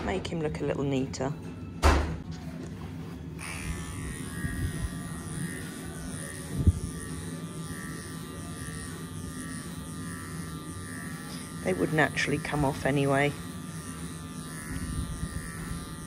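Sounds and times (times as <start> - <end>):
electric horse clippers running: 2.2 - 16.0.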